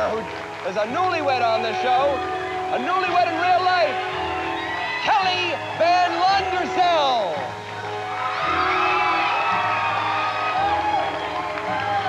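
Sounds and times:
audience cheering and whooping: 0.0s - 12.0s
upbeat walk-on music: 0.0s - 12.0s.

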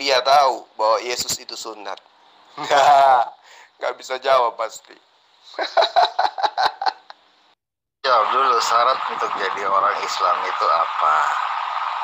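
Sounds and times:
man laughing staccato: 5.6s - 7.2s.

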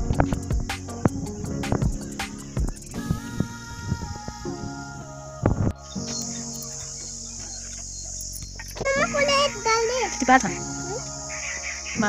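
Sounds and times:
background music: 0.0s - 12.0s
insects chirring: 0.0s - 12.0s
child calling out: 8.8s - 11.0s.

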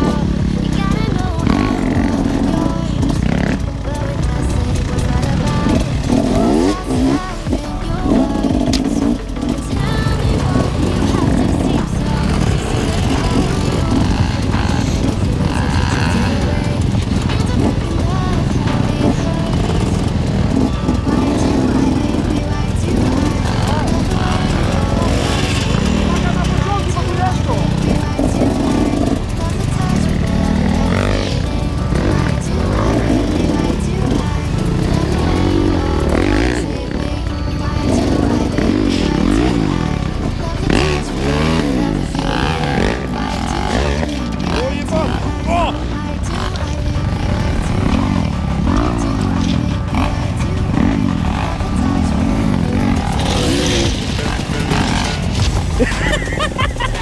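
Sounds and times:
dirt bike engines revving: 0.0s - 57.0s
music: 0.0s - 57.0s
voices: 0.0s - 57.0s.

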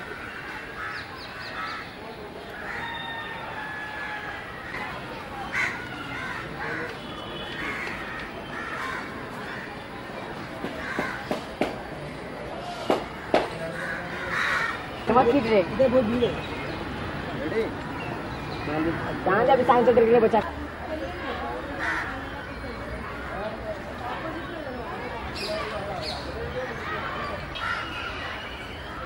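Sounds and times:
crows cawing: 0.0s - 1.9s, 2.6s - 4.9s, 5.5s - 7.0s, 7.6s - 9.8s, 10.7s - 11.4s, 12.7s - 14.9s, 21.8s - 22.2s, 27.6s - 28.0s.

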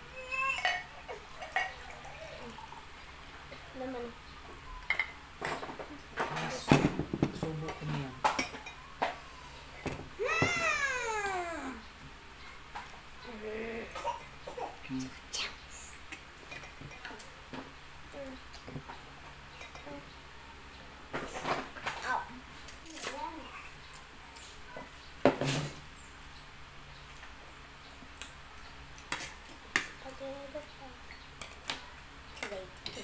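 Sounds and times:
forks clinking on a plate: 0.4s - 1.9s.

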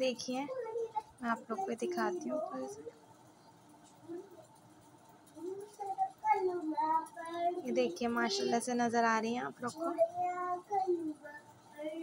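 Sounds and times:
child singing: 5.4s - 7.7s, 9.8s - 12.0s.

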